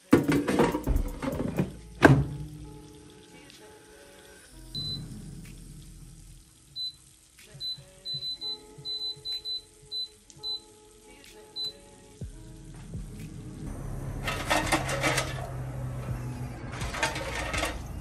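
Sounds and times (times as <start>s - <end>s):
metal basket rattling scrape: 14.2s - 15.7s, 16.6s - 18.0s.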